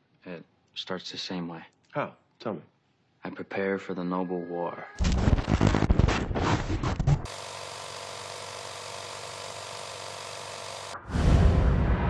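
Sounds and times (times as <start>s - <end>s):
film projector whirring: 7.2s - 11.0s.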